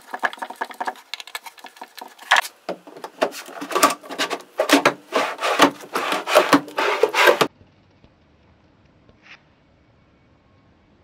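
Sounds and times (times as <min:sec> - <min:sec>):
drawer scraping on metal slides: 0:02.9 - 0:07.5.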